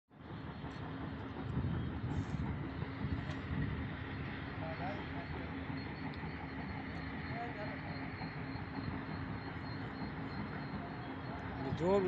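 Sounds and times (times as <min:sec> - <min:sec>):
truck diesel engine labouring: 0:00.1 - 0:12.0.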